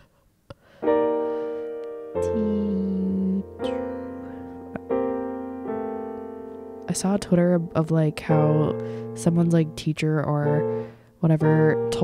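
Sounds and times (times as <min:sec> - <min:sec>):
piano chord: 0:00.6 - 0:12.0.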